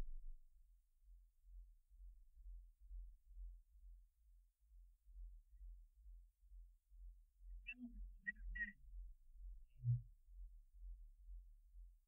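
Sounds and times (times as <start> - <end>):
faint low rumble: 0.0 - 0.5, 9.6 - 10.1.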